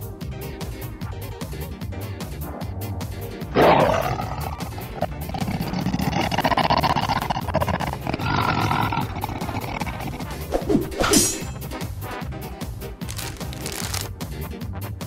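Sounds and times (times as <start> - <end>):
background music with steady beat: 0.0 - 3.5, 14.1 - 15.0
cartoon dragon roar: 3.5 - 10.7.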